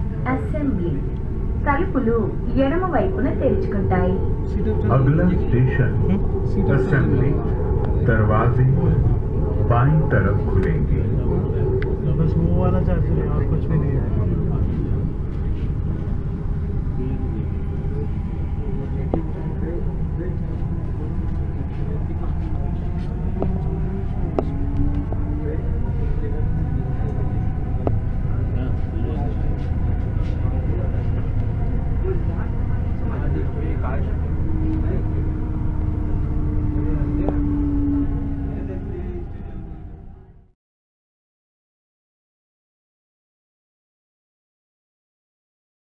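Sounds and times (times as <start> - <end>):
electric whine shifting pitch: 0.0 - 40.2
train rumble inside coach: 0.0 - 40.5.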